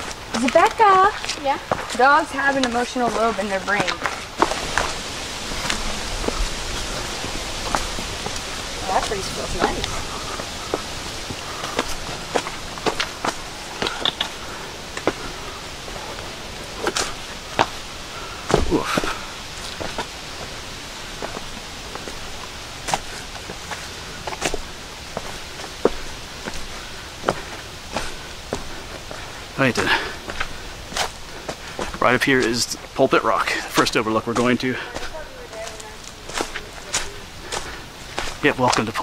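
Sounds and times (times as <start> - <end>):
footsteps on leaves and rocks: 0.0 - 39.0
steady background hiss: 0.0 - 39.0.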